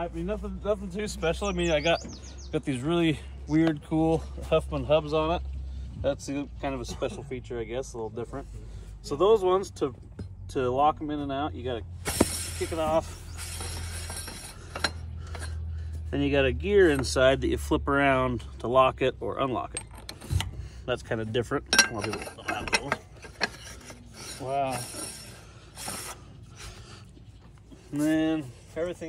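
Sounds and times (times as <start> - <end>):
light metal rattle: 12.0 - 16.1, 19.4 - 26.2
metallic scrape of hub turning: 12.0 - 16.1, 19.7 - 27.1
metal clinking: 13.4 - 15.6, 21.6 - 26.0.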